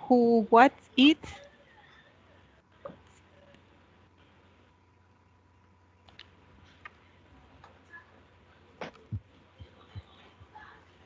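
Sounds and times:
faint irregular clicks: 6.0 - 7.0.

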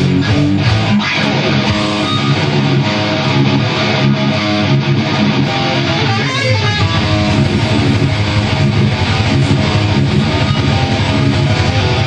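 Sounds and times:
distorted electric guitar riff: 0.0 - 12.0.

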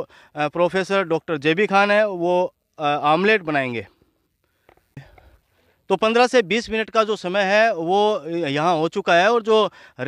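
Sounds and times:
man speaking loudly: 0.0 - 3.9, 5.9 - 9.7.

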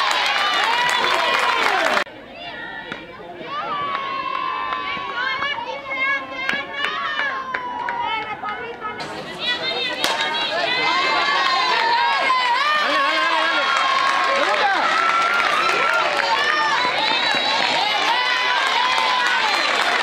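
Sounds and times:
girls and women shouting and cheering: 0.0 - 20.0
bat cracking a ball: 9.0 - 10.6.

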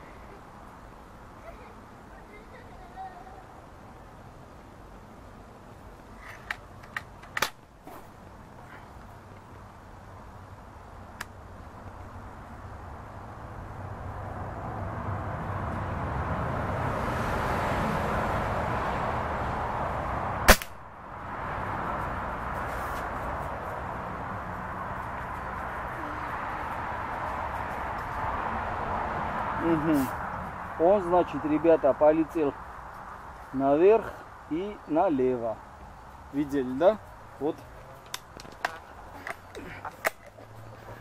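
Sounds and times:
steady background hiss: 0.0 - 16.0, 17.8 - 41.0
air rifle shot: 20.5 - 20.9.

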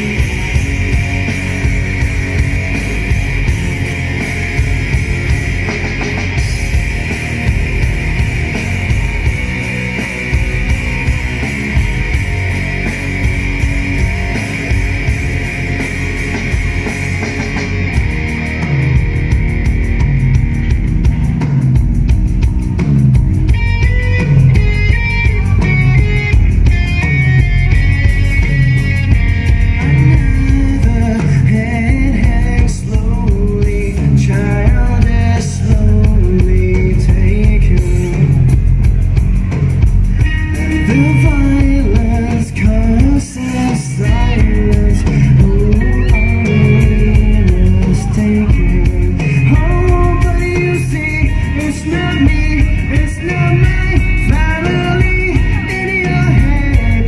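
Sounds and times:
loud rock music: 0.0 - 57.0
person singing: 29.7 - 38.5, 40.4 - 57.0.

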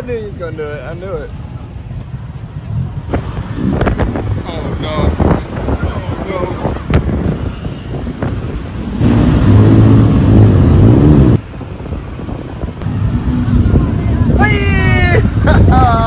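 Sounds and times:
street traffic: 0.0 - 16.0
steady engine hum: 1.4 - 16.0
wind on microphone: 2.9 - 16.0.

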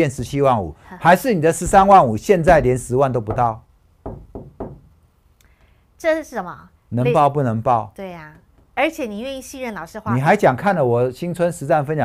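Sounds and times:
knuckles knocking on board: 1.6 - 4.9.

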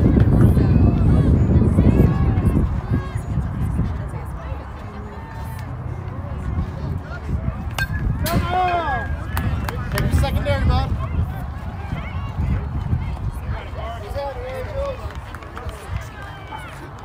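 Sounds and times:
spectators shouting and cheering: 0.0 - 17.0
wind rumbling on microphone: 0.0 - 17.0
bat hitting softball: 7.7 - 9.8.

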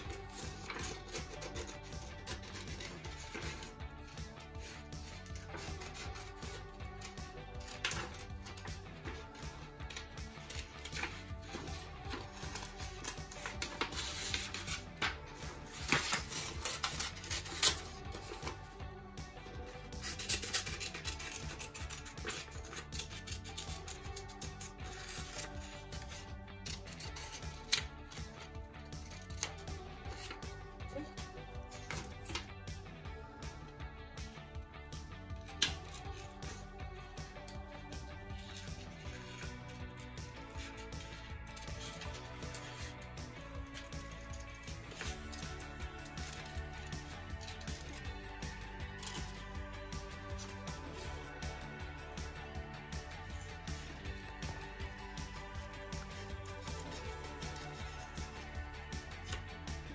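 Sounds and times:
paper rustling: 0.0 - 18.8, 19.4 - 32.5, 35.4 - 36.7, 38.3 - 59.9
scissors snipping paper: 0.0 - 18.8, 19.4 - 32.5, 35.3 - 59.9
background music: 0.0 - 59.9.

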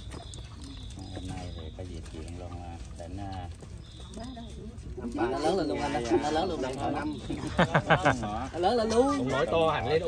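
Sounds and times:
people talking: 4.1 - 10.0.

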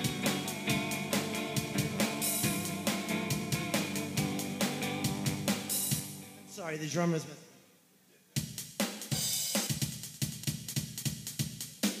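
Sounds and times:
drum machine rock beat: 0.0 - 6.4, 8.4 - 12.0.

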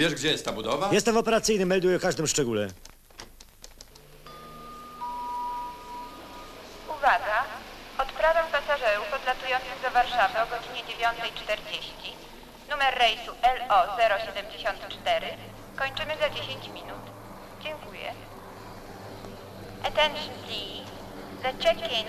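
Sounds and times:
lower electronic tone: 4.0 - 7.0
electronic beep tone: 4.3 - 6.8.

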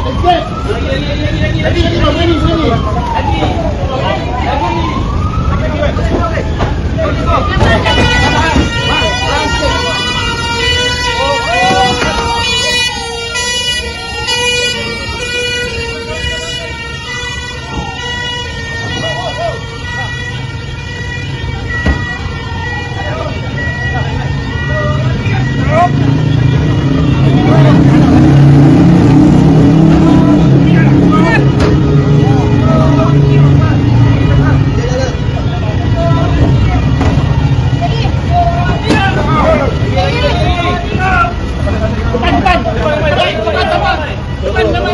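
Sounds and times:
emergency vehicle siren wailing: 0.0 - 44.9
people shouting: 7.4 - 26.2, 34.9 - 44.9.

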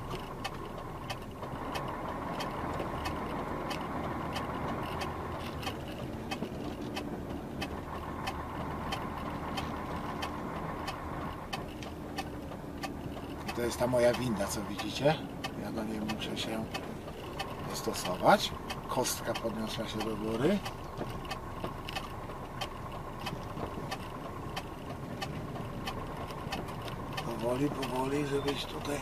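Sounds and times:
hazard light flasher ticking: 0.0 - 29.0
lorry engine running: 0.0 - 29.0.

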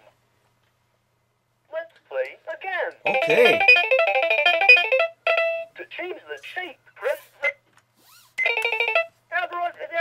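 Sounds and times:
toy voice speaking: 3.1 - 3.8.

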